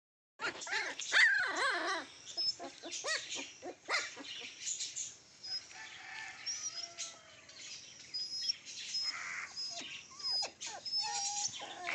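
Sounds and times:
puppies whining and yelping: 0.4s - 4.5s, 5.4s - 5.8s, 8.2s - 11.9s.

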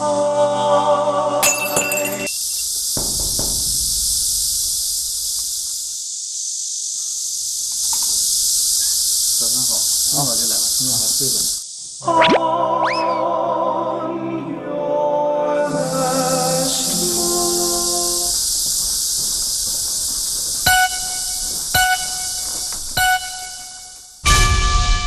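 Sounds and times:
cicadas buzzing: 0.0s - 13.5s, 15.6s - 25.0s.

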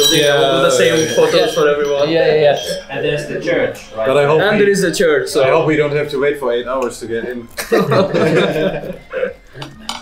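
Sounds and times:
group laughter: 7.5s - 9.7s
cutlery clicks: 9.6s - 10.0s
cutlery scraping on ceramic plate: 9.6s - 10.0s.

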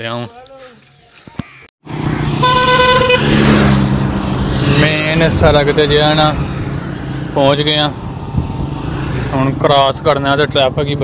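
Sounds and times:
vehicle engine hum with road noise: 1.8s - 11.0s
vehicle horn: 2.4s - 3.5s.

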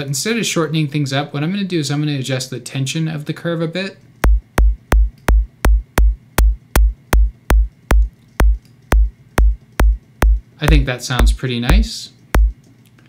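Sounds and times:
synthesized kick drum: 4.2s - 12.6s.

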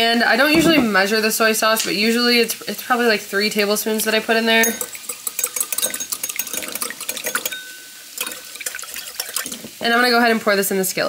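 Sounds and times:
whisk scraping ceramic bowl: 4.2s - 9.8s.

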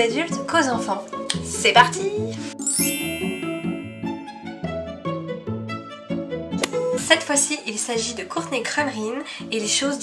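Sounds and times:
background music: 0.0s - 10.0s
sparkling magic chime: 2.6s - 4.4s.

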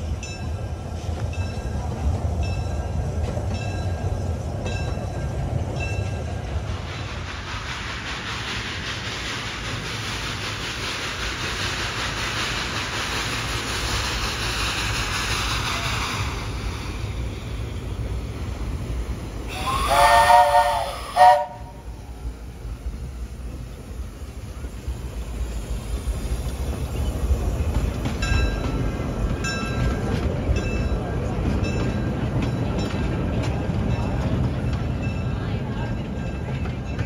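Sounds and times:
rush of steam: 0.0s - 37.0s
train rumbling: 0.0s - 37.0s
steam whistle blast: 19.5s - 21.9s.

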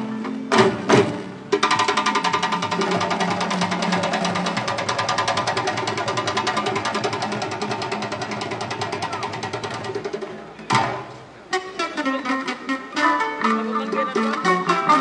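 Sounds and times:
fast drum roll: 0.6s - 11.0s.

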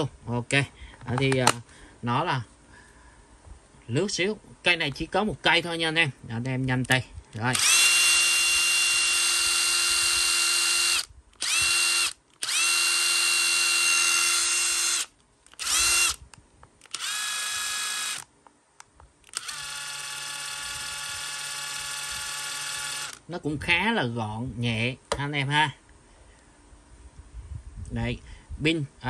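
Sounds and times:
impact driver motor spinning up: 7.5s - 16.2s, 16.8s - 18.3s, 19.2s - 23.2s.

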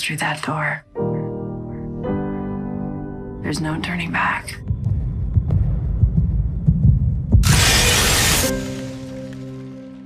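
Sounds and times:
deep uneven rumble: 3.8s - 7.7s
low thuds: 4.6s - 7.6s.

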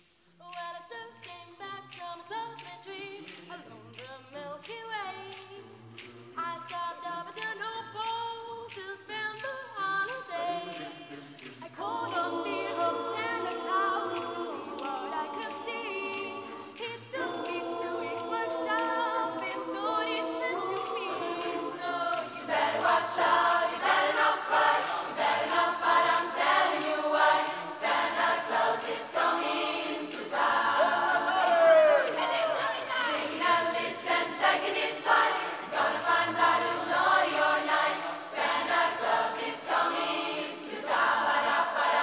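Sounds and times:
choir singing a cappella: 0.6s - 42.0s.

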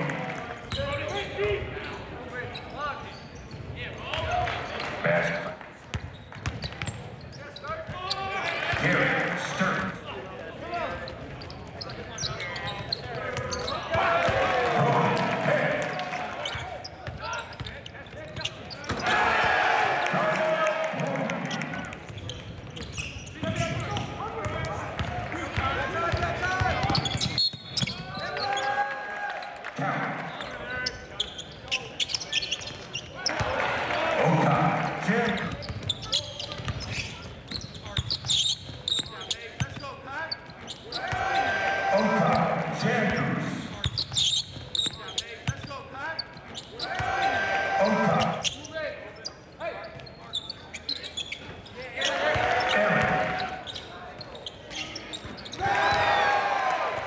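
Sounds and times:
voices in a gym: 0.0s - 57.0s.

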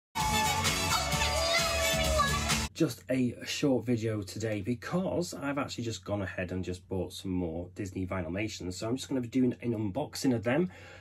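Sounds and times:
stage show music: 0.2s - 2.7s
man speaking: 2.7s - 10.7s.

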